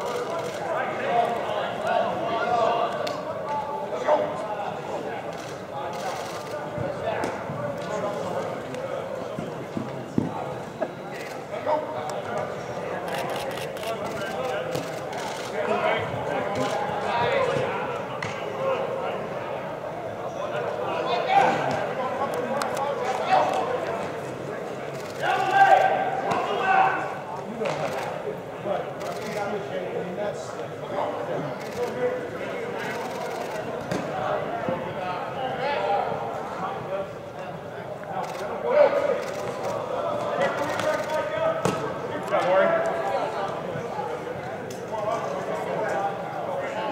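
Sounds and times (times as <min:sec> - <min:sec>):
people talking and calling out: 0:00.0 - 0:46.9.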